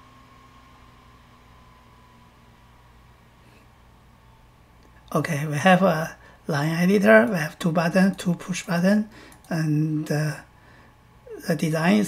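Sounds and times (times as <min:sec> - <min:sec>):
room tone hiss: 0:00.0 - 0:12.0
thin steady whine: 0:00.0 - 0:12.0.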